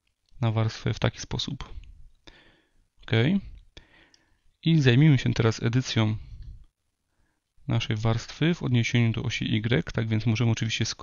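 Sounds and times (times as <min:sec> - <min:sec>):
faint breath noise: 0:01.6 - 0:04.6, 0:06.1 - 0:07.6.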